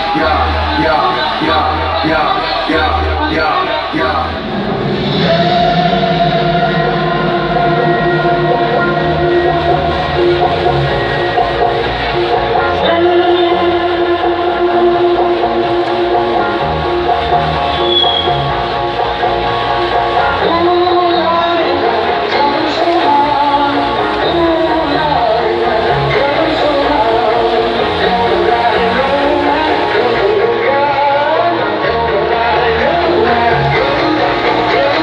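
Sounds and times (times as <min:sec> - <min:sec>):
loud concert music: 0:00.0 - 0:35.0.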